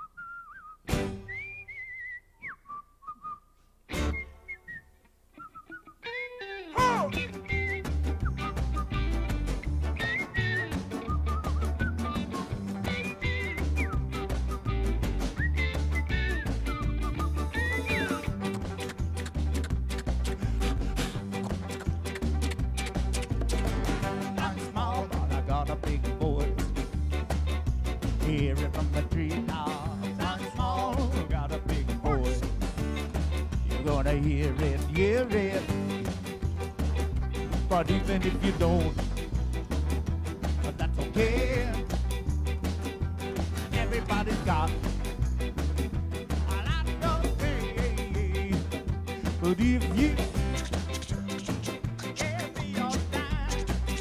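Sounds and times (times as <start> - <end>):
acoustic ska band playing: 0.9 - 1.4, 3.9 - 4.5, 6.2 - 54.0
electric guitar: 6.0 - 54.0
congas: 6.8 - 54.0
upright bass walking: 6.8 - 54.0.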